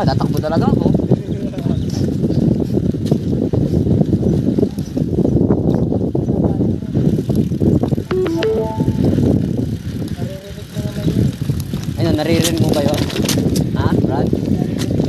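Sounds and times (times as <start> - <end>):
wind buffeting microphone: 0.0 - 8.1, 9.1 - 15.0
mountain bike rattling: 6.8 - 8.1, 9.4 - 15.0.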